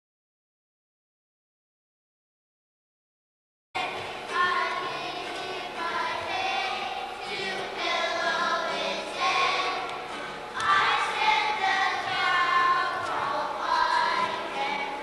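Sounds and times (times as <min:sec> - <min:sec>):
children's choir singing: 0:03.8 - 0:15.0.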